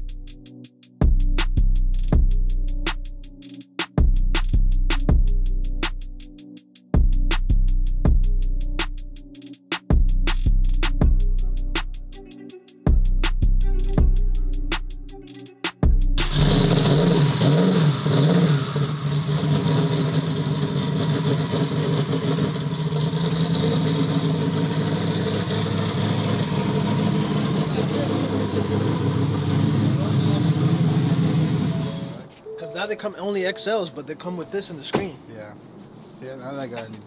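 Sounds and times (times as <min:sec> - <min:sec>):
race car engine revving and idling: 0:16.2 - 0:32.3.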